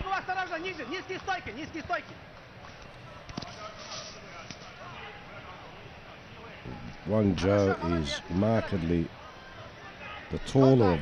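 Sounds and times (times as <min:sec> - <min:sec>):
crowd shouting: 0:00.0 - 0:11.0
crowd hum: 0:00.5 - 0:11.0.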